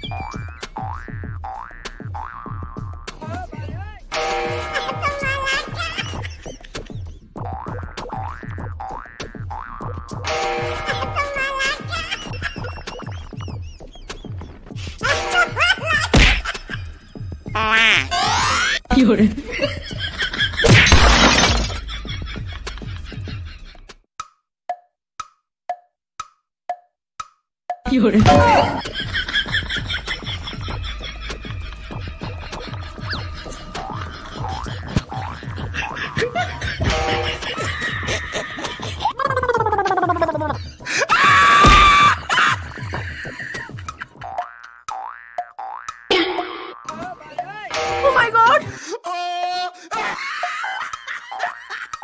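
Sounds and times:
background music: 0.0 - 8.8, 9.4 - 20.6, 27.9 - 44.1, 46.9 - 49.0
glass shattering crash: 20.7 - 21.8
springy boing glides: 44.3 - 47.0.

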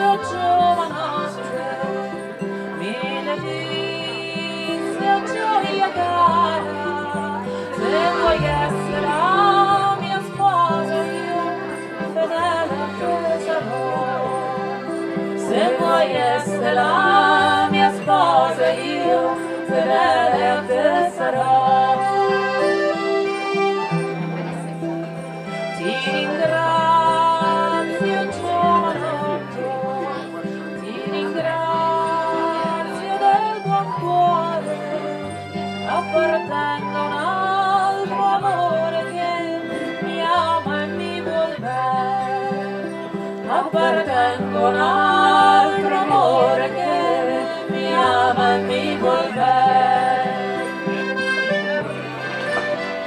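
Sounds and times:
woman singing: 0.0 - 22.9, 25.7 - 35.3, 35.9 - 51.0
acoustic guitar: 0.0 - 53.0
piano accordion: 0.0 - 53.0.

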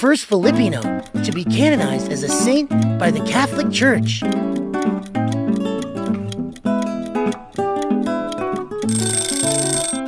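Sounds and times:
plucked acoustic guitar music: 0.4 - 10.0.

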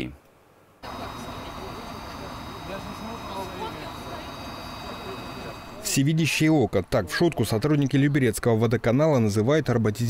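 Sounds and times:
outdoor background rumble: 0.8 - 6.0
faint high whine: 0.8 - 6.8.

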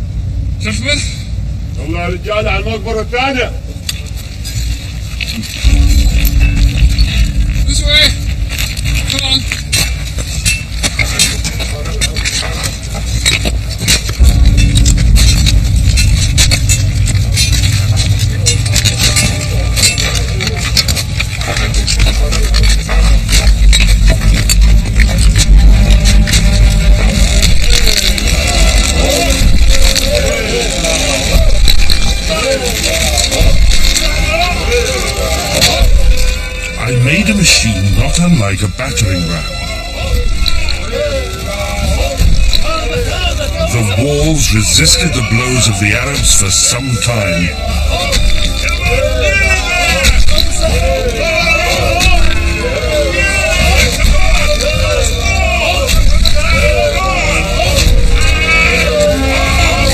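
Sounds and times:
men calling out: 5.4 - 59.9
dramatic orchestral film music: 14.2 - 59.9.

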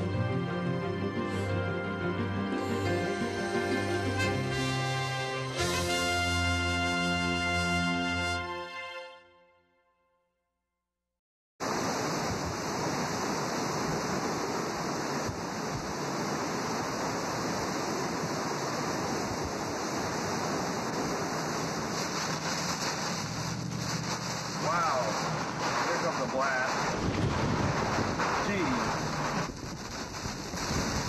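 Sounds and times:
wind and driving rain: 0.0 - 8.6, 11.6 - 31.0.

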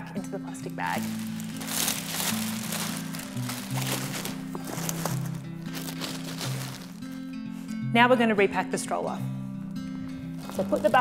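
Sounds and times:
background music with low notes: 0.0 - 11.0
plastic bag crinkling: 0.6 - 7.3, 10.3 - 11.0.

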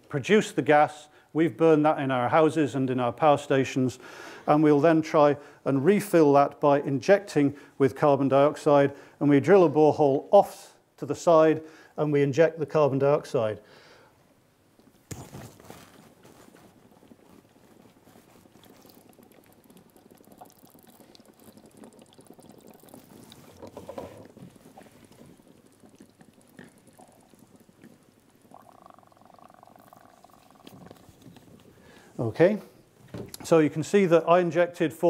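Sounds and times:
bubbling and gurgling in water: 16.6 - 32.0.

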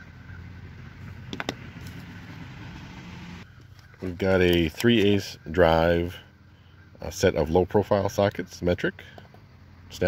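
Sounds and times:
engine humming: 0.0 - 10.0.

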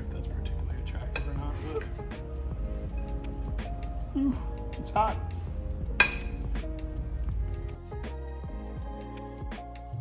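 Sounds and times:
background music: 0.0 - 10.0
metal spoon clinking on ceramic plate: 6.0 - 6.4.

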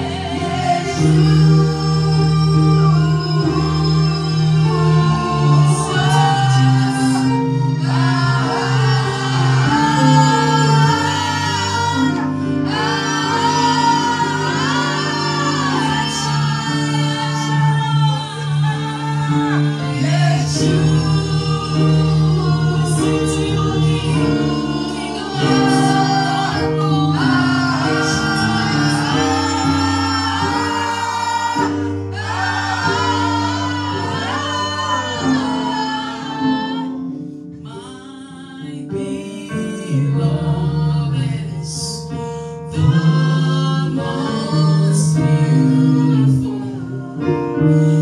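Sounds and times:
held instrumental chords: 0.0 - 37.6.

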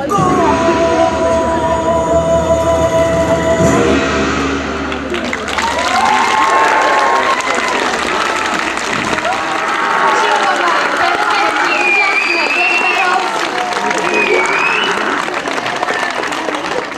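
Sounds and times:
music with long held notes: 0.0 - 6.5
audience applause: 4.9 - 16.9.

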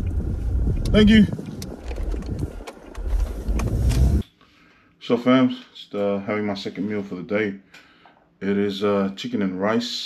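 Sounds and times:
road and engine rumble: 0.0 - 4.2.

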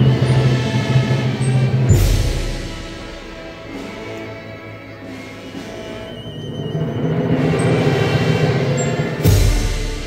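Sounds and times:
band playing funeral march: 0.0 - 10.0.

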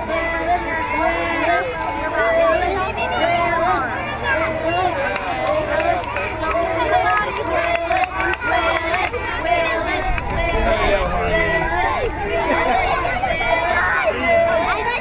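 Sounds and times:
children shouting and cheering: 0.0 - 15.0.

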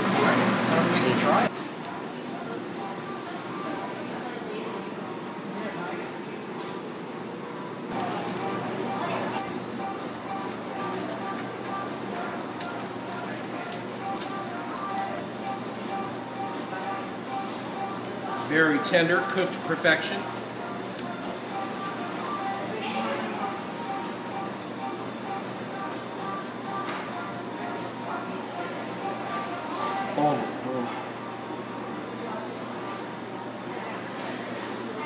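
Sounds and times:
indistinct restaurant chatter: 0.0 - 35.0
background music: 7.9 - 30.2.

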